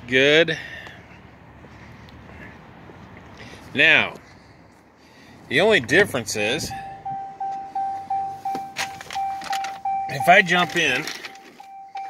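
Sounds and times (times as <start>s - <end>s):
car warning chime dinging: 6.4s - 12.0s.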